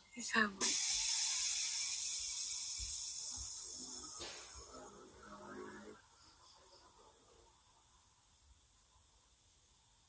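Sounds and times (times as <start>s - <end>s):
high-pitched hiss: 0.0s - 10.0s.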